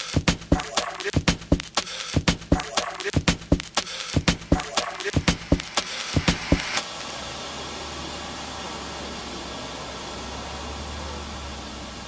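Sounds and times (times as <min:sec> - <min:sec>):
electronic drum beat: 0:00.0 - 0:06.8
even hiss: 0:00.0 - 0:10.0.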